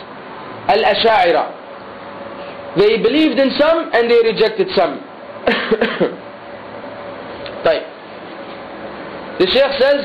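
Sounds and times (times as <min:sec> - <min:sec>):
man clearing his throat: 0:05.4 - 0:06.2.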